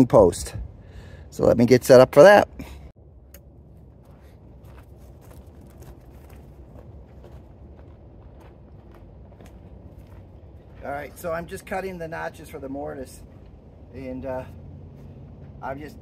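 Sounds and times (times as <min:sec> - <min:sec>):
low steady rumble: 0:00.0 - 0:01.9, 0:02.5 - 0:16.0.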